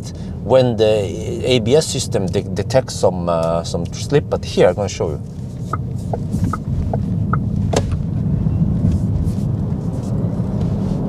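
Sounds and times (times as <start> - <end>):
road and tyre rumble: 0.0 - 11.0.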